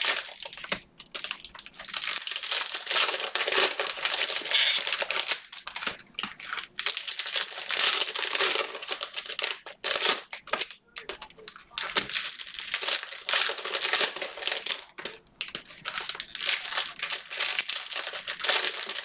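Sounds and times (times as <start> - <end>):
cellophane wrappers crinkling and tearing: 0.0 - 19.0.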